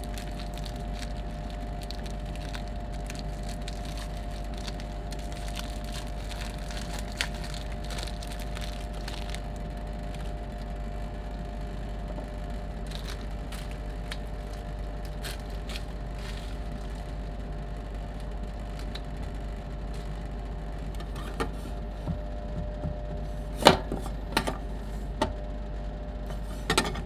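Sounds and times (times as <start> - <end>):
foil candy wrapper crinkling: 0.0 - 11.0, 11.6 - 21.5
refrigeration machine hum: 0.0 - 27.0.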